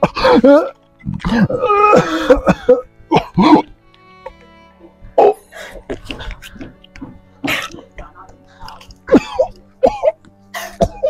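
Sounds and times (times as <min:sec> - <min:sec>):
man coughing harshly: 0:00.0 - 0:03.7, 0:07.4 - 0:08.0, 0:09.1 - 0:11.0
soft background music: 0:00.0 - 0:11.0.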